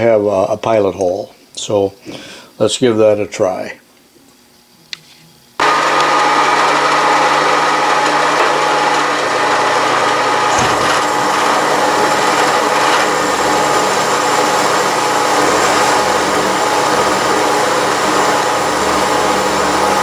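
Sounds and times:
milling machine whine: 0:05.6 - 0:20.0.

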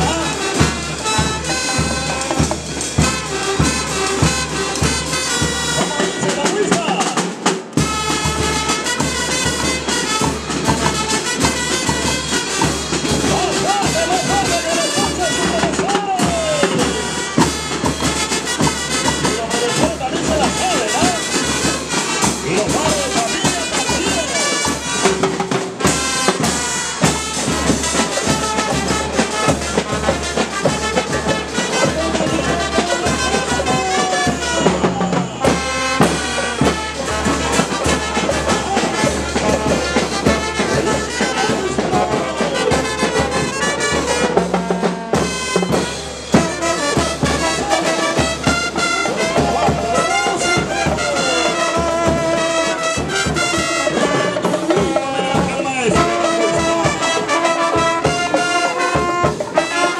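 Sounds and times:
saxophones: 0:00.0 - 0:06.8, 0:07.8 - 0:59.9
drum kit and cymbals: 0:00.0 - 0:59.9
snare drums: 0:00.0 - 0:59.9
trombones: 0:00.0 - 0:59.9
trumpets: 0:00.0 - 0:59.9.

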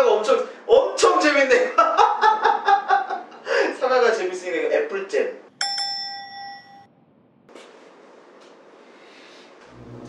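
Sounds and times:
bright bell chime: 0:05.6 - 0:06.9.

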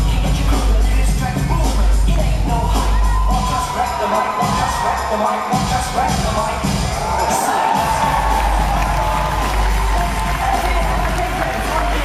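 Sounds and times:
music with strong bass beat: 0:00.0 - 0:12.0
audience cheering and screaming: 0:02.7 - 0:12.0.

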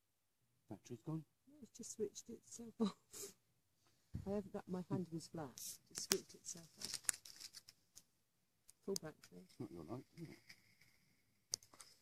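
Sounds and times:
rustling scrapes: 0:06.5 - 0:07.8.

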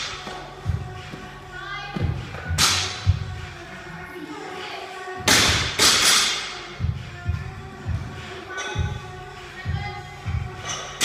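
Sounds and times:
gym equipment thuds and slaps: 0:05.3 - 0:06.3.

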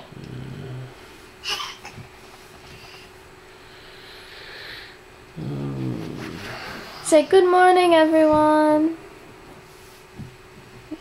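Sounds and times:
man groaning sleepily: 0:05.4 - 0:06.8.

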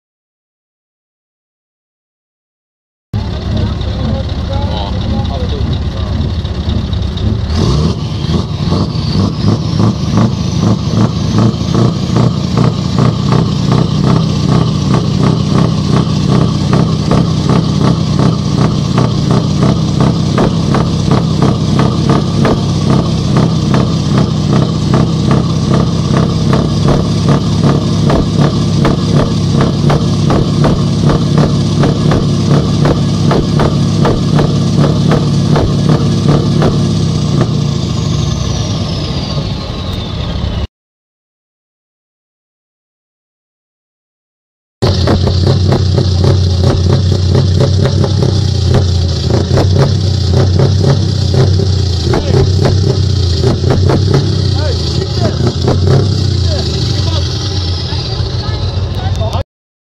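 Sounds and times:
truck diesel engine revving: 0:03.2 - 0:40.7, 0:44.8 - 0:59.4.

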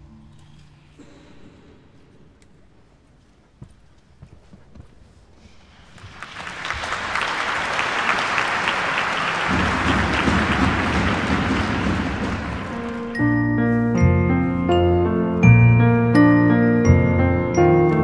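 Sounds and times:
audience applauding: 0:05.9 - 0:13.3.

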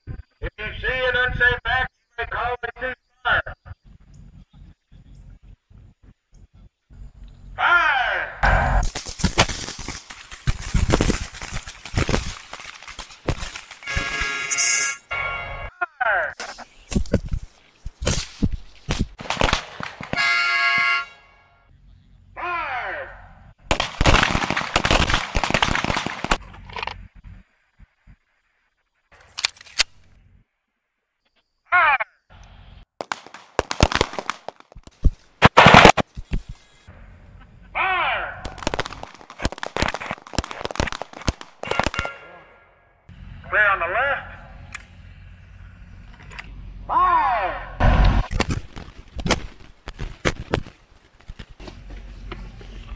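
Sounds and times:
voices: 0:00.1 - 0:05.8, 0:07.6 - 0:08.8, 0:15.2 - 0:16.7, 0:22.4 - 0:23.4, 0:31.7 - 0:32.5, 0:36.9 - 0:38.6, 0:41.6 - 0:45.7, 0:46.3 - 0:47.8
rapid pistol shots: 0:19.2 - 0:20.3, 0:23.7 - 0:26.4, 0:33.0 - 0:34.8, 0:35.4 - 0:36.1.

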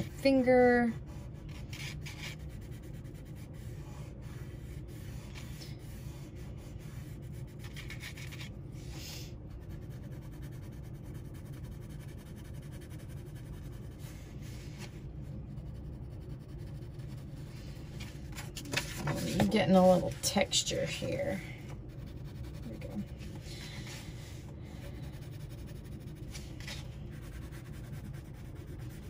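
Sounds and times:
pencil scratching on paper: 0:00.0 - 0:08.5, 0:09.5 - 0:17.9, 0:19.0 - 0:24.0, 0:24.7 - 0:29.0
low steady hum: 0:00.0 - 0:29.0
finger rubbing paper: 0:01.3 - 0:08.5, 0:09.6 - 0:18.1, 0:21.9 - 0:24.1, 0:24.7 - 0:29.0.

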